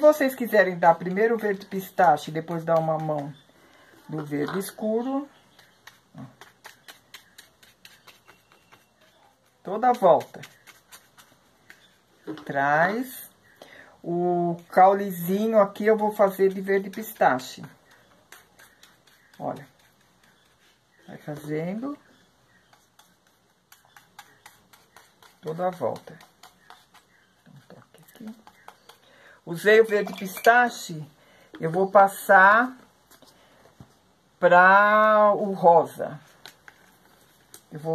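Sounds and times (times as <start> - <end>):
paintbrush dabbing on plastic: 0.2 - 12.5, 14.7 - 30.8.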